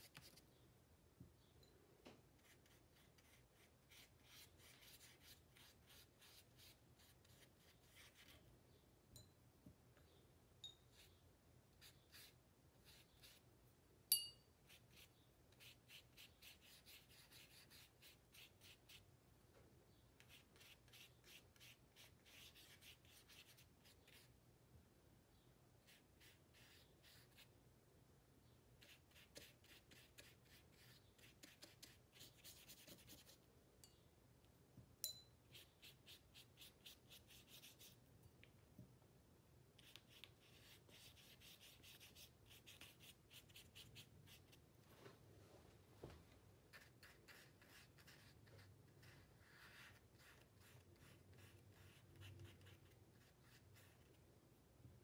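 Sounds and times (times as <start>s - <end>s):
paintbrush stroking paper: 2.4s - 8.4s, 11.8s - 13.4s, 14.7s - 19.0s, 20.2s - 24.3s, 25.9s - 27.5s, 28.8s - 33.4s, 39.8s - 44.6s, 46.7s - 54.1s
brush clinking glass jar: 14.1s - 14.4s.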